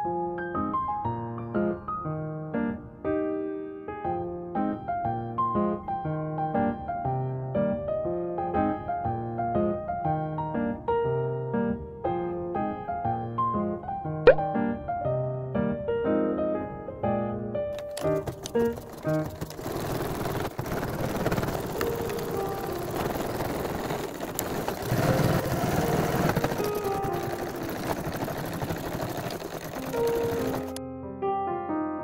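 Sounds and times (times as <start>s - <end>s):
soft piano music: 0.0s - 19.6s, 21.6s - 24.3s, 24.9s - 32.0s
sewing machine stitching: 17.8s - 30.8s.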